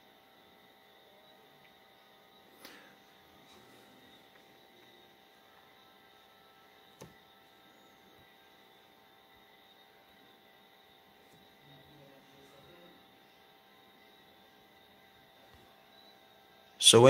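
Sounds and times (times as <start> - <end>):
faint room hiss and hum: 0.0 - 17.0.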